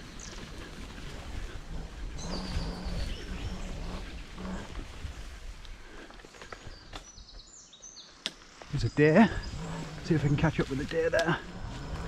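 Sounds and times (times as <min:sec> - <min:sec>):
wind and jolting rumble: 0:00.0 - 0:07.3, 0:08.7 - 0:12.0.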